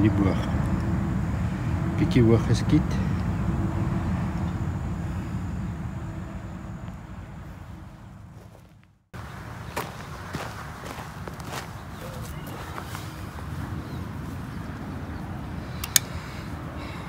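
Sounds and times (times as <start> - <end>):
footsteps on dry leaves: 8.3 - 14.7.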